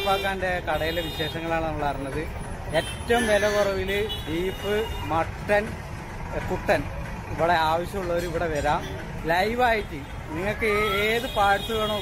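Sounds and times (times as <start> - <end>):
man's voice: 6.3 - 12.0.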